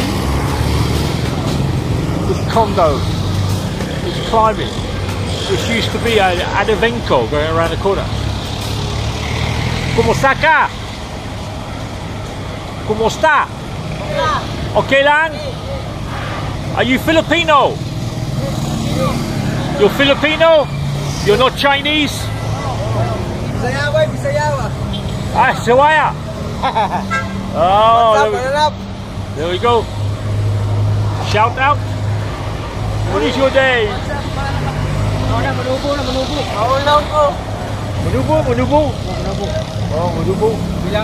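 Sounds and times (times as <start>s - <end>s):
street traffic: 0.0s - 41.0s
vehicle engine humming: 0.0s - 41.0s
man speaking: 4.0s - 8.2s, 18.4s - 26.2s, 27.6s - 29.9s.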